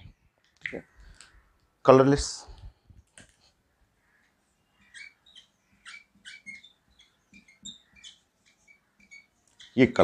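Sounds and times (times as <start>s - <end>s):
marker squeaking on whiteboard: 4.0s - 10.0s.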